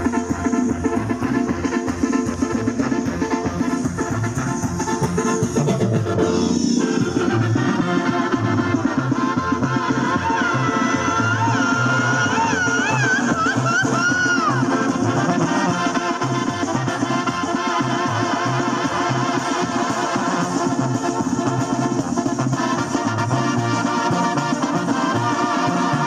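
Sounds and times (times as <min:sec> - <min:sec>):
brass band music: 0:00.0 - 0:26.0
high lead line with vibrato: 0:00.0 - 0:26.0.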